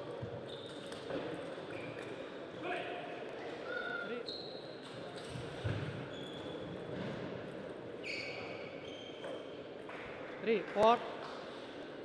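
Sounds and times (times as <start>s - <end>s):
shoes squeaking on floor: 4.2s - 6.8s, 8.0s - 9.6s.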